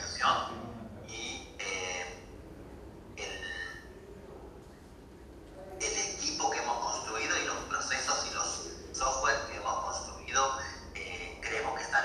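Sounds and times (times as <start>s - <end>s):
man speaking over loudspeakers: 0.0s - 2.2s, 3.2s - 3.9s, 5.8s - 12.0s.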